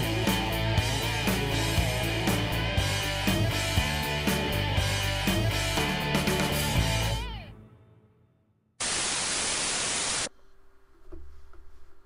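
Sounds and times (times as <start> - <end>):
static hiss: 8.8 - 10.3.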